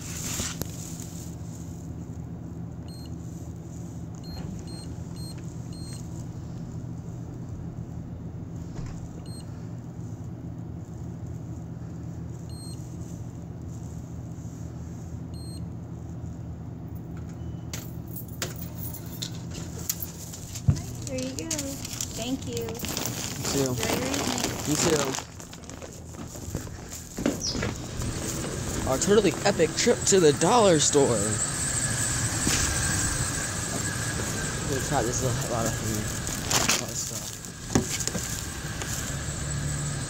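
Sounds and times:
rustling: 0.0 - 2.3, 19.6 - 29.6
steady low hum: 0.0 - 40.0.

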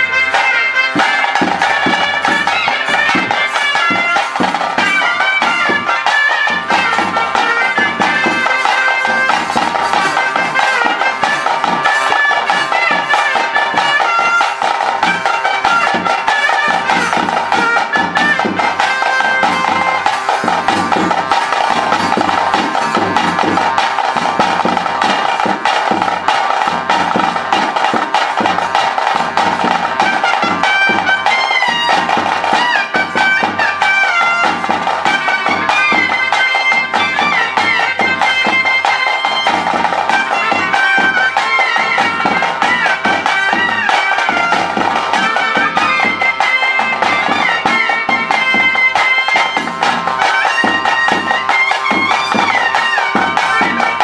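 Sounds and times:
drums beating: 0.0 - 54.0
reed wind instrument melody: 0.0 - 54.0.

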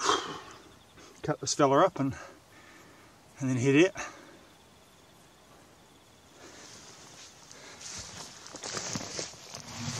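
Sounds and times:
rustling and scraping near microphone: 6.5 - 9.9.

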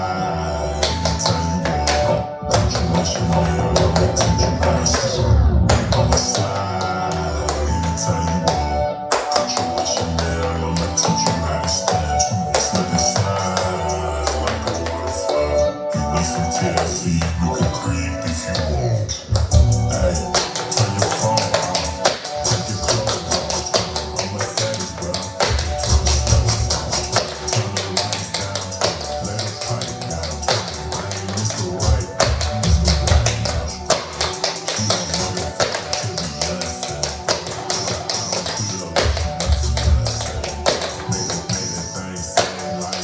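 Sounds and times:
hip-hop track with rapping: 0.0 - 43.0.

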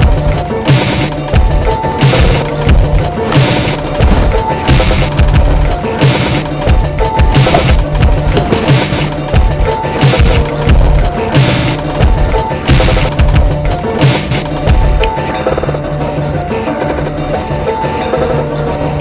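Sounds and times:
steady drum beat: 0.0 - 15.2
loud soundtrack music: 0.0 - 19.0.

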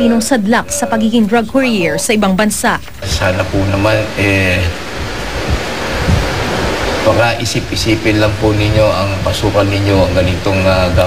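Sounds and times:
faint low thumps: 2.8 - 11.0
loud rushing hiss: 3.0 - 11.0.

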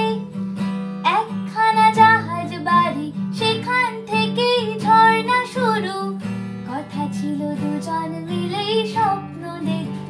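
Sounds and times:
woman singing: 0.0 - 0.4, 1.0 - 10.0
acoustic guitar: 0.0 - 10.0.

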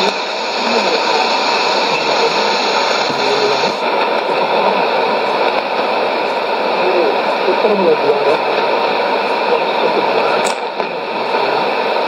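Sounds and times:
static hiss: 0.0 - 12.0
weak radio voice: 0.0 - 12.0.

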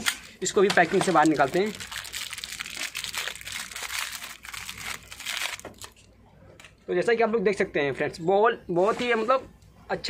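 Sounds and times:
plastic bag crinkling: 0.0 - 6.1.

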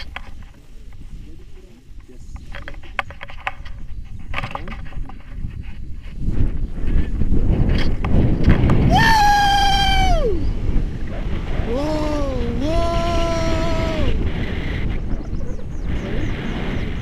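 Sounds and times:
wind rushing over microphone: 0.0 - 17.0
person shouting: 8.9 - 10.5, 11.7 - 14.2.

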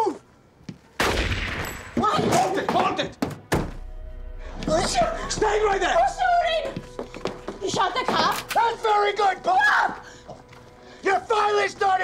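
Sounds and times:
tense music drone: 3.7 - 12.0
man shouting: 8.7 - 10.0.

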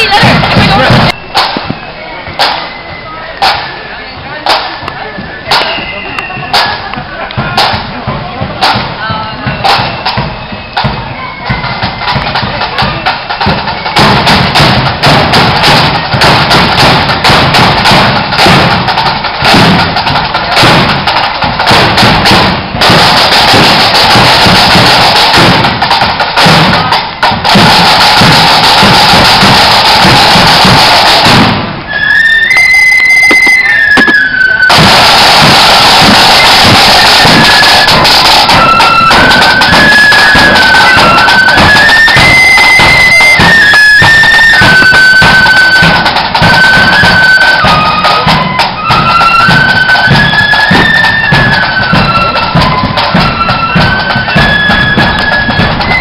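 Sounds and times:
flutes playing shrill tune: 0.0 - 56.0
side drums beating: 0.0 - 56.0.

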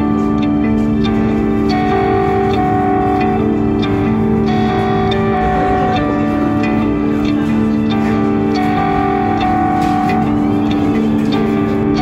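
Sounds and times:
plucked guitar music: 0.0 - 12.0.

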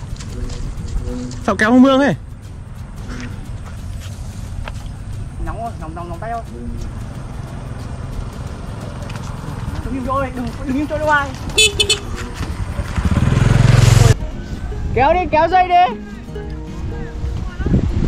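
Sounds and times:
wind buffeting microphone: 0.0 - 1.6, 16.7 - 18.0
motorbike engine rushing: 6.7 - 14.2
motorbike horn beeping: 11.5 - 12.2.

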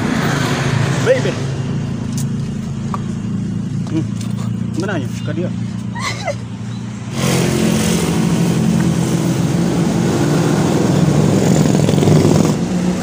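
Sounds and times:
vehicle engine revving: 0.0 - 13.0.

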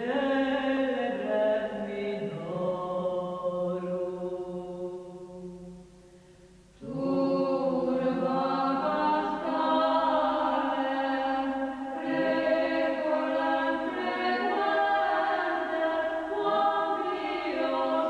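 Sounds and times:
choral soundtrack music: 0.0 - 18.0.

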